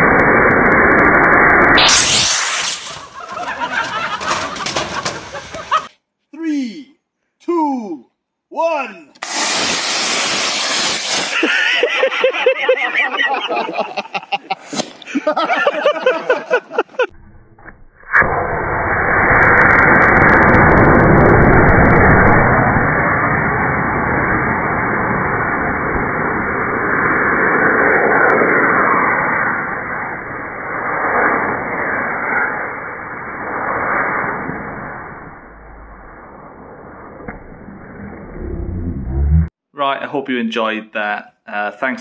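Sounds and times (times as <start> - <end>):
rocket motor hissing rush: 0.0 - 5.8, 9.2 - 12.0.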